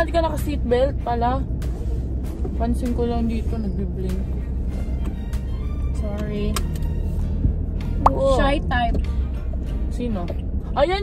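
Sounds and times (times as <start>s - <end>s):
car interior rumble: 0.0s - 11.0s
young woman talking: 9.9s - 11.0s.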